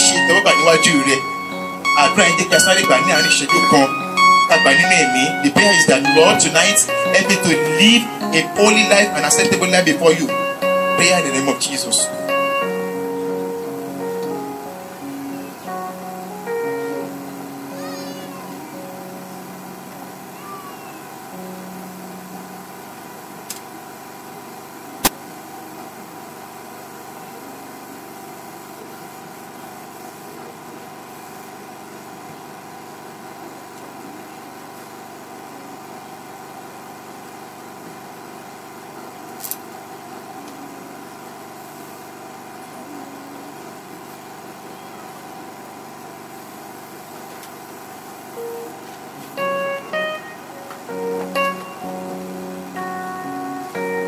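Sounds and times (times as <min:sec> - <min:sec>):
faint held musical notes: 0:00.0 - 0:23.2, 0:48.4 - 0:54.0
background hiss and hum: 0:00.0 - 0:54.0.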